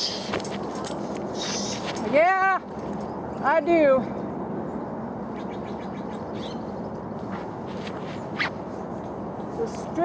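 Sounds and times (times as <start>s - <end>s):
faint rustles and clicks: 0.0s - 3.2s, 7.2s - 10.0s
outdoor background noise: 0.0s - 10.0s.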